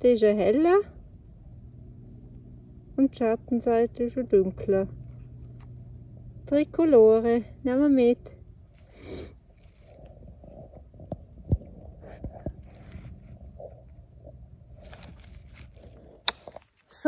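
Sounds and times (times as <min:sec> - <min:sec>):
rustling on forest floor: 0:14.7 - 0:17.0.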